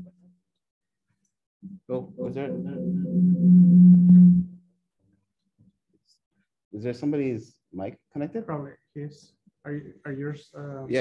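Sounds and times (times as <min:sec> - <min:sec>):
low audio feedback tone: 0:01.6 - 0:04.6.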